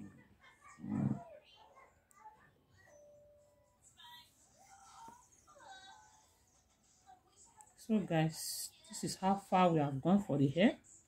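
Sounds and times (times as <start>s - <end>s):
faint background tones: 0.0s - 11.0s.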